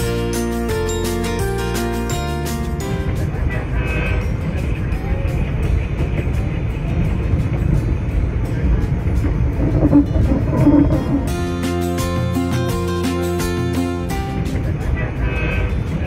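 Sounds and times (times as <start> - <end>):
passenger train rumbling: 2.8 - 16.0
indistinct voices: 3.0 - 11.9.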